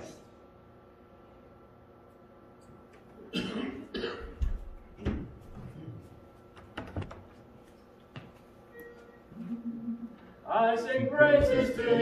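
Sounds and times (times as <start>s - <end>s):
man coughing: 3.3s - 4.4s.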